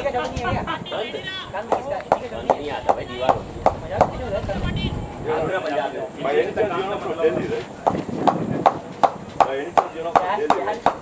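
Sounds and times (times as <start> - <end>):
hands clapping: 7.9 - 11.0.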